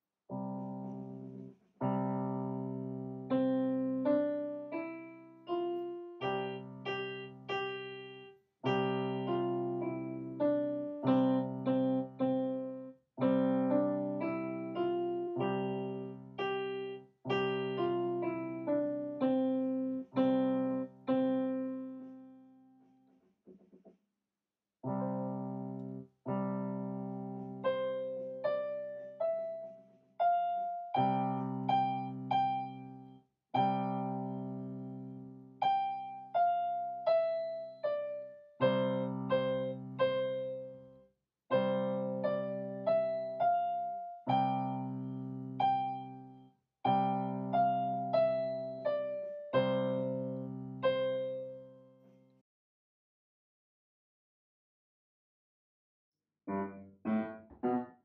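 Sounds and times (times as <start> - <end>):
slow piano melody: 0.0 - 23.0, 24.8 - 52.4, 56.5 - 58.0
low piano chords: 0.3 - 22.6, 24.9 - 52.1, 56.5 - 58.0.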